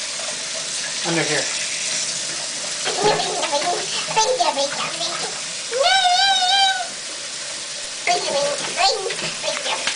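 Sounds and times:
tap water running into sink: 0.0 - 9.9
child's high-pitched vocal sound: 3.0 - 7.0.

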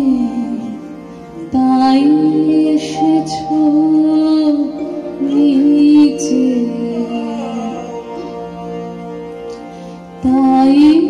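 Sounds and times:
woman singing: 0.0 - 8.5, 10.2 - 11.0
keyboard accompaniment: 0.0 - 11.0.

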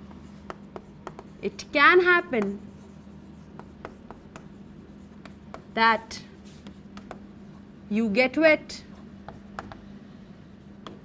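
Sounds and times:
chalk scratching on chalkboard: 0.1 - 8.0, 8.8 - 11.0.

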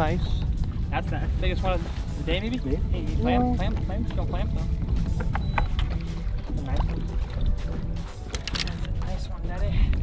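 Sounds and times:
faint background music: 0.0 - 10.0
wind and water rumbling: 0.0 - 10.0.

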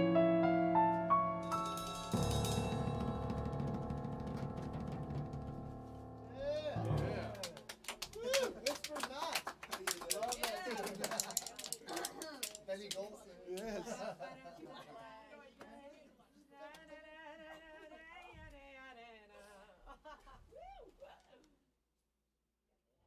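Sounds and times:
piano chord ringing: 0.0 - 7.5
small group clapping: 6.6 - 13.9.

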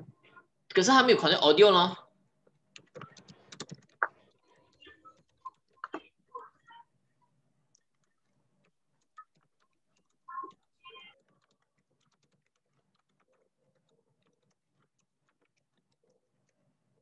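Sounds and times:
keyboard keys clicking: 2.7 - 4.2, 7.7 - 16.6.

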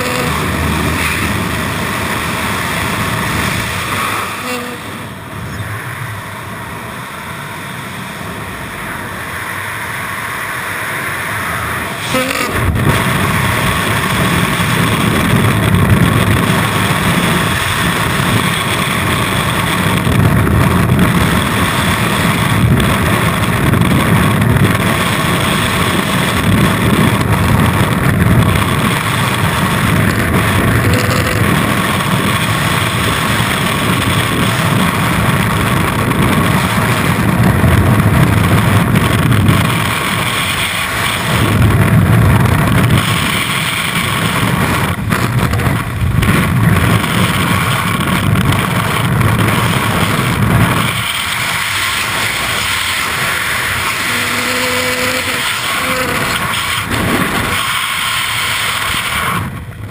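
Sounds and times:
freefall wind roar: 0.0 - 59.9.

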